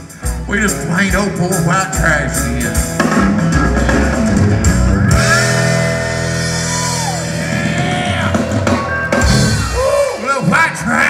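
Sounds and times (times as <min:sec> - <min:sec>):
country-rock band sustained chord: 0:00.0 - 0:11.0
bending guitar notes: 0:01.5 - 0:10.5.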